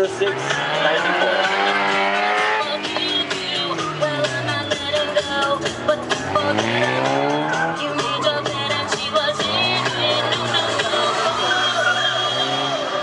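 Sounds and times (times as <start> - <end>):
background music with beat: 0.0 - 13.0
car engine revving: 0.0 - 13.0.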